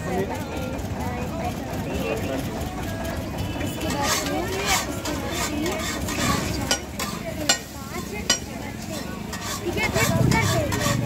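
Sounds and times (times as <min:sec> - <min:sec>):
metal spatulas scraping griddle: 0:03.8 - 0:11.0.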